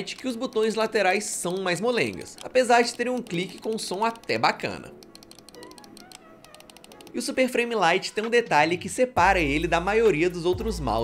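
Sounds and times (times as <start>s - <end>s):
mouse button clicks: 0.0s - 7.2s.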